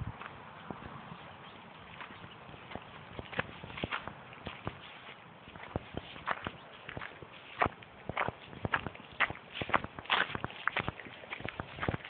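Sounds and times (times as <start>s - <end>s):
footsteps in grass: 1.5s - 12.0s
grass rustling: 1.6s - 12.0s.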